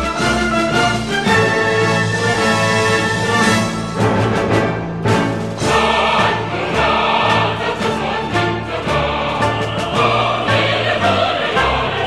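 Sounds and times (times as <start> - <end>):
orchestral accompaniment: 0.0 - 12.0
choir singing: 5.3 - 12.0.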